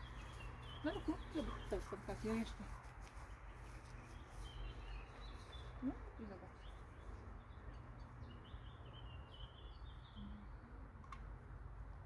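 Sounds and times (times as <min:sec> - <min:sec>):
small bird chirping: 0:00.0 - 0:10.8.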